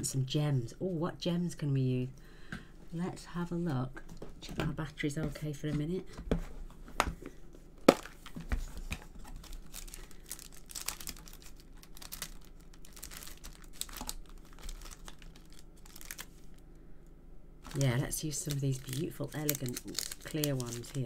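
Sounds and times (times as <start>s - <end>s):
plastic packets rustling: 7.8s - 16.7s, 17.6s - 21.0s.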